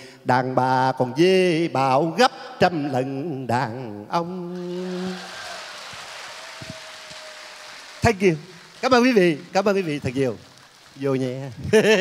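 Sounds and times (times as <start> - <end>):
audience applause: 4.6 - 12.0.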